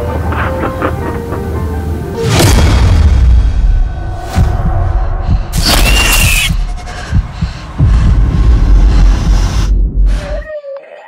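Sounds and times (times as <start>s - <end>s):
deep throbbing bass drone: 2.4s - 10.3s.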